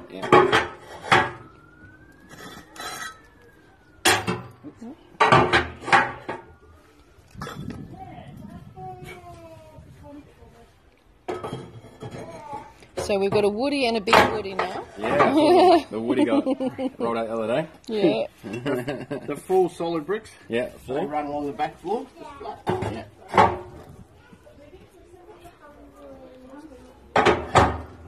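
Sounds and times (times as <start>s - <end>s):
brick scraping against metal: 0.2s - 1.4s, 2.3s - 3.4s, 11.3s - 13.2s.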